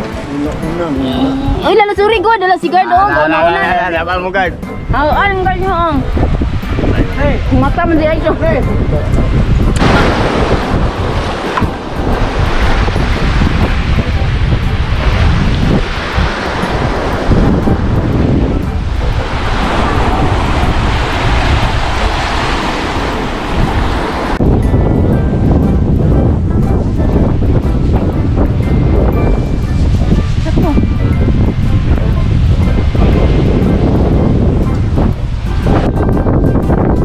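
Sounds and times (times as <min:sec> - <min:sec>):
wind buffeting microphone: 0:00.0 - 0:37.0
surf washing up a beach: 0:06.1 - 0:37.0.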